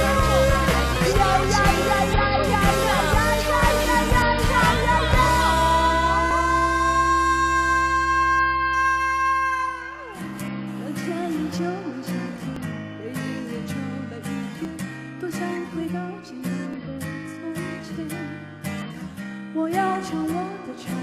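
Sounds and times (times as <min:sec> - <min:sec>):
pop band holding a long note: 0:00.0 - 0:12.5
strummed acoustic guitar: 0:00.0 - 0:21.0
woman singing: 0:00.0 - 0:21.0.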